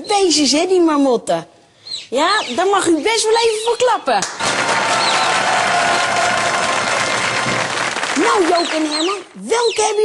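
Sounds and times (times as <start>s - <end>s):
audience applauding: 4.2s - 9.4s.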